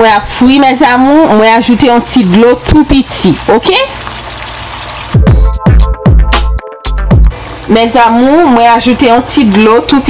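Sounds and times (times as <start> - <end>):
sauce simmering in a frying pan: 2.6 - 5.3
electronic music with bass beat: 5.2 - 7.4.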